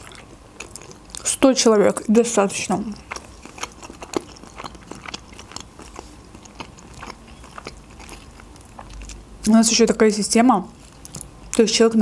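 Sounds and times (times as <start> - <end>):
chewing food: 0.0 - 9.2, 10.7 - 11.3.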